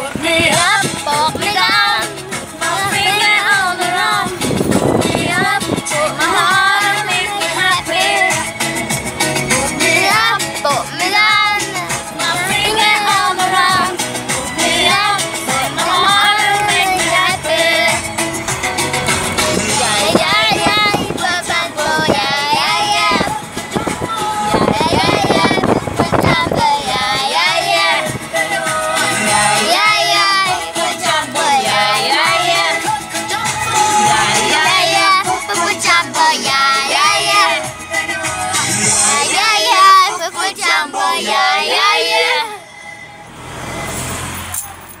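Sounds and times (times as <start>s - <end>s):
girl singing: 0.0s - 4.4s, 9.8s - 14.0s, 14.6s - 18.0s, 19.6s - 38.0s, 39.0s - 42.6s
music: 0.0s - 43.3s.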